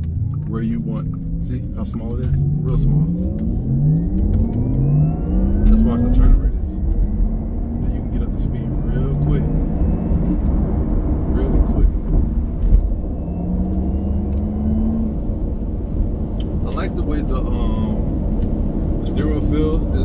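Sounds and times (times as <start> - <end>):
low road rumble: 0.0 - 20.0
synthesized electric car engine sound: 0.0 - 20.0.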